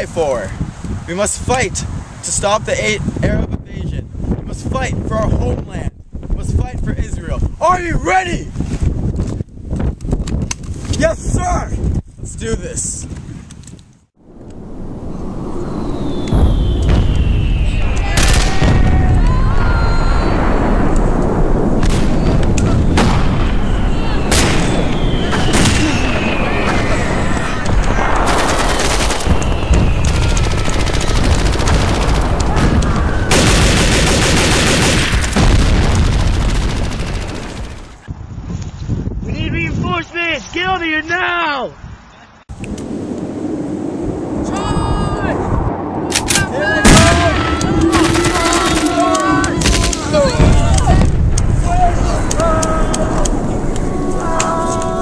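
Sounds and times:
explosion booms: 14.2 - 37.0, 44.0 - 53.8
falling whistles: 14.8 - 21.0, 23.2 - 31.6
gunfire shots and bursts: 27.9 - 38.0.

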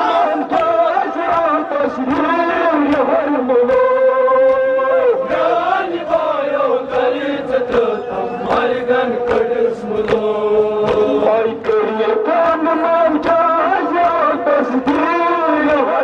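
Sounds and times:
man chanting lament: 0.0 - 16.0
men beating their chests: 0.0 - 16.0.

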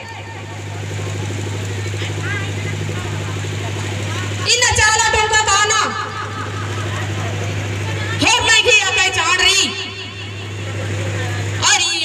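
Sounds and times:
faint voices: 0.0 - 12.0
steady low hum: 0.0 - 12.0.

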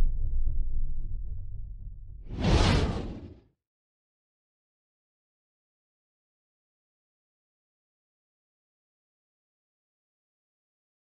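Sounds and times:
low rumble: 0.0 - 3.4
whoosh sound effect: 2.3 - 3.4.

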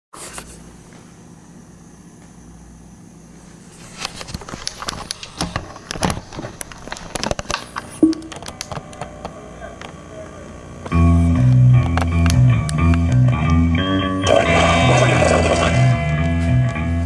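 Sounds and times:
short tone: 8.0 - 8.4
low steady hum: 8.0 - 11.9.

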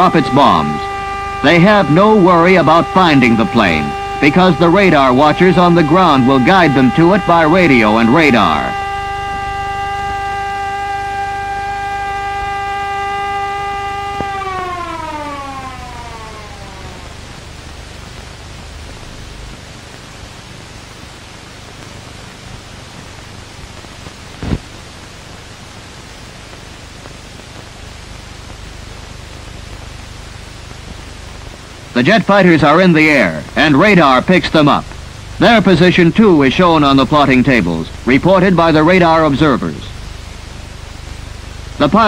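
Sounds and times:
alarm siren winding down: 0.0 - 17.7
film soundtrack hiss: 0.0 - 42.0.

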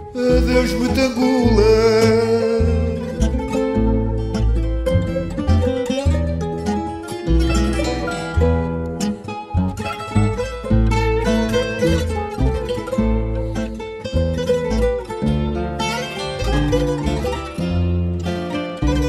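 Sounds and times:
plucked guitars playing melody: 0.0 - 19.0
steady bass notes: 0.0 - 19.0.

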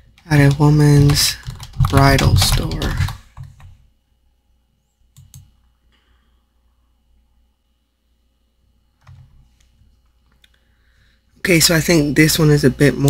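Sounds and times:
faint computer clicks: 5.1 - 5.5.

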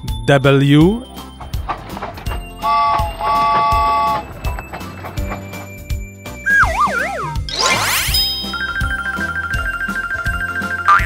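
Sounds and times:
cartoon train whistle: 2.6 - 4.3, 6.5 - 7.4.

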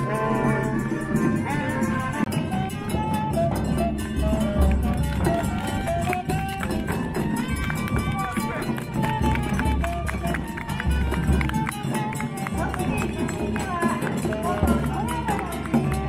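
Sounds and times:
saxophone melody: 0.0 - 12.9
small drums and gong: 0.0 - 16.0.

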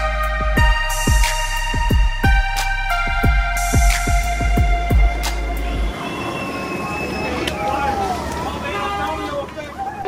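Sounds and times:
people's voices and calls: 5.2 - 10.0.

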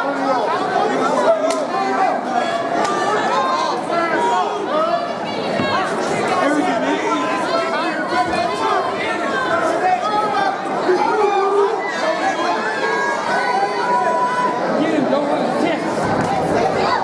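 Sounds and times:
crowd talking and calling out: 0.0 - 17.0.

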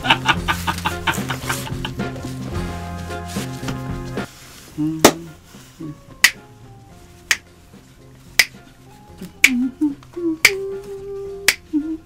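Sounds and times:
faint background music: 0.0 - 12.0
finger snaps: 6.2 - 6.5, 7.3 - 7.5, 8.4 - 8.6, 9.2 - 10.7, 11.4 - 11.8.

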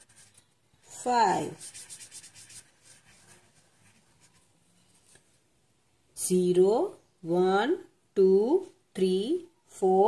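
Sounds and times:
felt-tip marker rubbing on paper: 0.0 - 0.4, 1.2 - 4.4.

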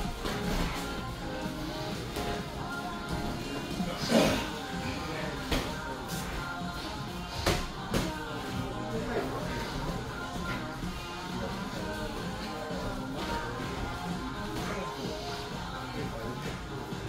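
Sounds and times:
background music with held notes: 0.0 - 17.0.

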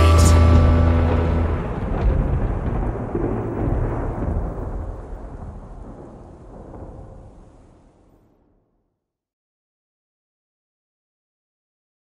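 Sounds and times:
thunder rumbling: 0.0 - 8.8.

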